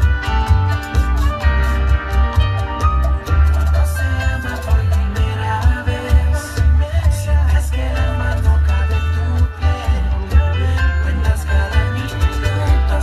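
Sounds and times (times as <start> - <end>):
latin song with singing and bass: 0.0 - 13.0.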